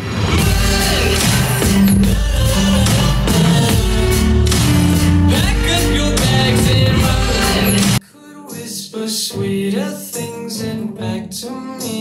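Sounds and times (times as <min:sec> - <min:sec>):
pop song from party speaker: 0:00.0 - 0:12.0.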